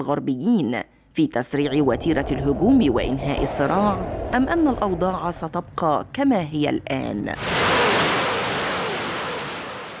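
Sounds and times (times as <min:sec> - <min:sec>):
rockets launching: 0:07.4 - 0:10.0.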